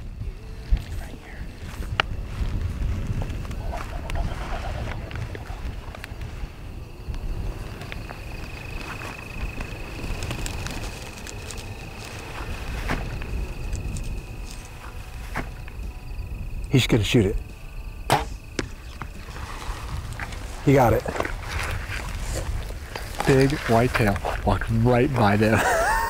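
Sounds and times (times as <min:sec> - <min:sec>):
wind rumble on microphone: 0:00.0 - 0:26.0
small clicks and rustles: 0:07.8 - 0:13.0.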